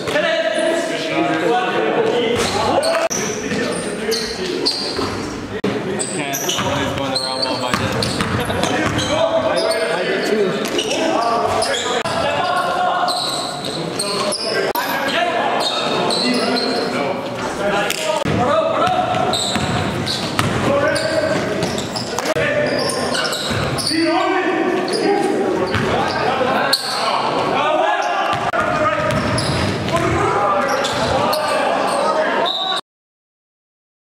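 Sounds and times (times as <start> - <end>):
players' voices: 0.0 - 32.8
short high shoe squeaks: 2.4 - 5.2, 6.0 - 10.0, 15.6 - 17.0, 19.3 - 24.2, 30.6 - 32.8
basketball bouncing on gym floor: 7.7 - 9.1, 18.3 - 20.7, 28.3 - 30.2.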